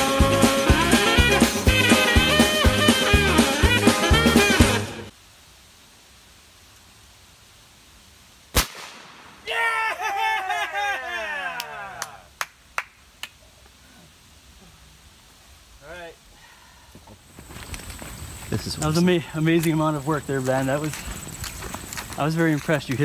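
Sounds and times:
air rifle shot: 0:08.5 - 0:09.4
man whooping cheer: 0:09.4 - 0:12.3.

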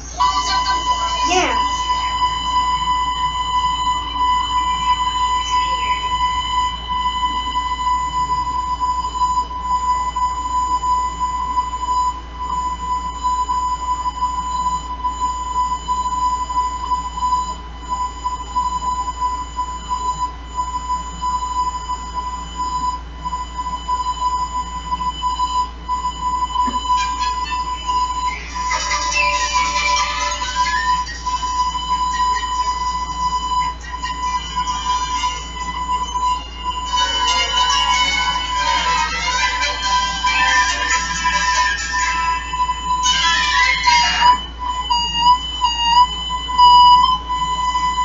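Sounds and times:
high-pitched beep tone: 0:00.0 - 0:18.1, 0:23.4 - 0:48.0.

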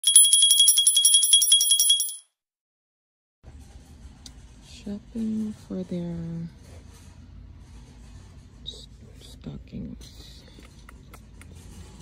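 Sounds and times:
sleigh bells jingling: 0:00.0 - 0:02.2.

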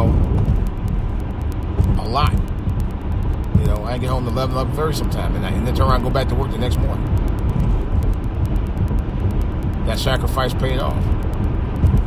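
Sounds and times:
car road noise rumble: 0:00.0 - 0:12.0.

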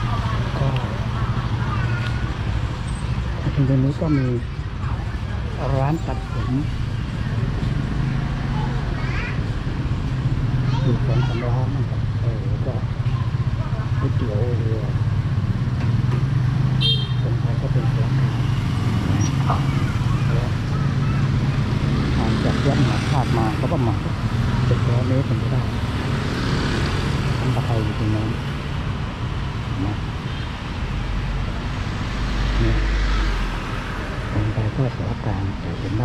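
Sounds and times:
motorbikes passing: 0:00.0 - 0:36.0
voices talking: 0:00.0 - 0:36.0.

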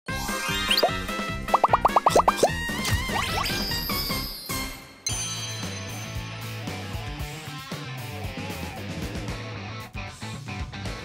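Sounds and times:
upbeat cartoon jingle: 0:00.5 - 0:06.0
rising plop sound effects: 0:00.7 - 0:03.5.

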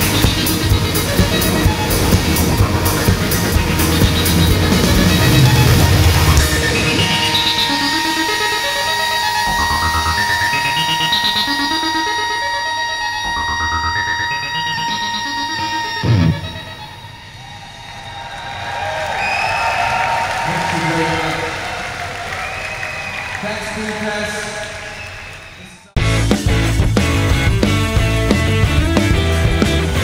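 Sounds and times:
electronic rock band playing live: 0:00.0 - 0:17.2, 0:26.0 - 0:30.0
crowd cheering and whistling: 0:00.0 - 0:26.0.

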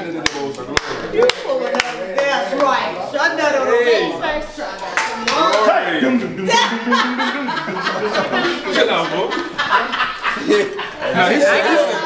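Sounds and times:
people talking and calling out: 0:00.0 - 0:12.0.

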